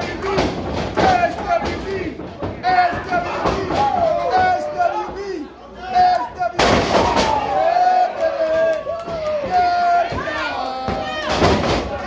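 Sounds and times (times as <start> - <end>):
wrestler crashing onto ring: 0.0 - 5.4, 6.5 - 7.8, 9.1 - 12.0.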